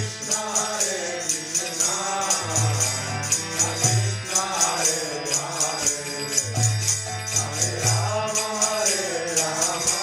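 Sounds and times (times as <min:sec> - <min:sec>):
small hand cymbals: 0:00.0 - 0:10.0
group chanting: 0:00.3 - 0:06.3.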